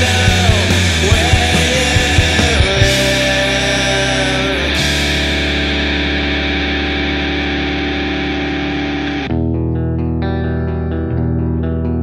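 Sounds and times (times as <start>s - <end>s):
distorted electric guitar chords: 0.0s - 12.0s
picked guitar notes with effects: 0.0s - 12.0s.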